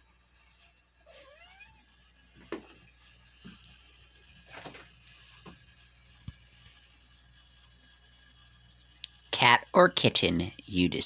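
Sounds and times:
cat meowing: 0:01.1 - 0:01.8.

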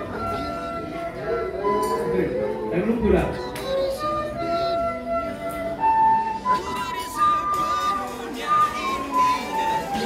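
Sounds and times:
recorder playing slow melody: 0:00.0 - 0:10.0.

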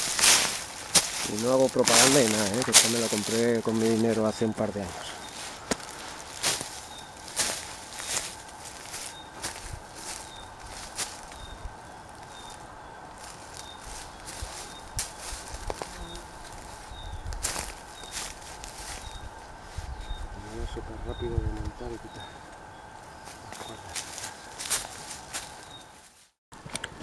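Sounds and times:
twigs snapping: 0:00.0 - 0:04.6, 0:05.2 - 0:11.5, 0:13.2 - 0:19.2, 0:22.4 - 0:25.8
footsteps through dry leaves: 0:00.0 - 0:26.4.

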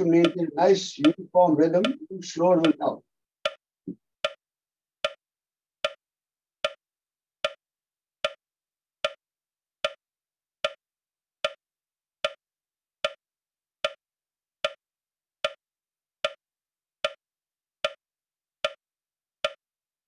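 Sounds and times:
metronome ticking: 0:00.0 - 0:03.6.

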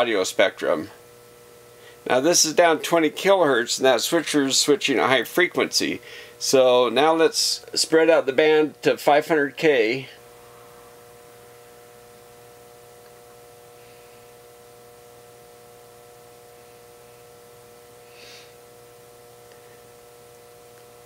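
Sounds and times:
faint electrical hum: 0:00.0 - 0:21.0.

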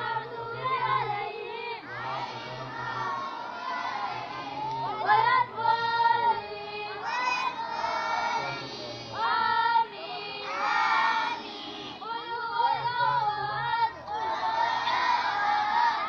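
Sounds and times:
boys singing: 0:00.0 - 0:16.0.

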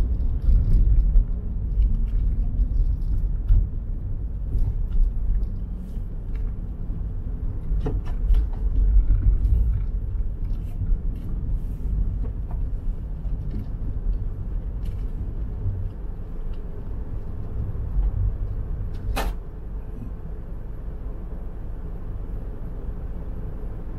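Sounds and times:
car rumbling over snow: 0:00.0 - 0:23.9.

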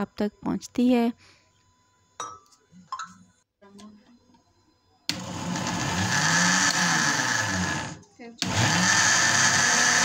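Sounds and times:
blender motor grinding: 0:05.1 - 0:10.0.

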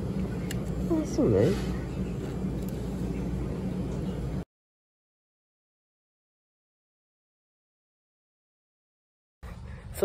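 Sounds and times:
low machine hum: 0:00.0 - 0:04.5, 0:09.4 - 0:10.0.

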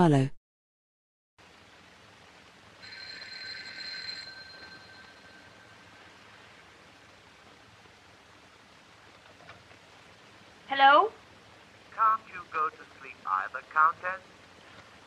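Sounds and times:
soundtrack hiss: 0:01.4 - 0:15.0
telephone bell ringing: 0:02.8 - 0:06.1.

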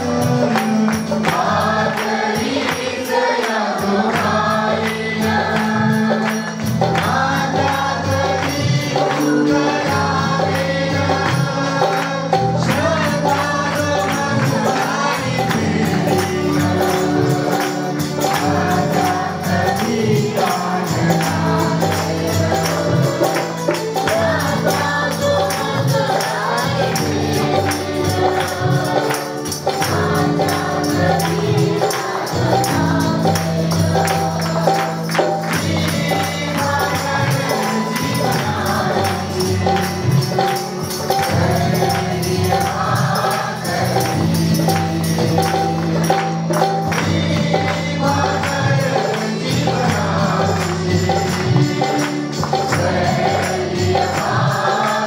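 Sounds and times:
group singing worship song: 0:00.0 - 0:55.0
hand-clapping: 0:00.0 - 0:55.0
instrumental accompaniment: 0:00.0 - 0:55.0
tambourine: 0:00.0 - 0:55.0.

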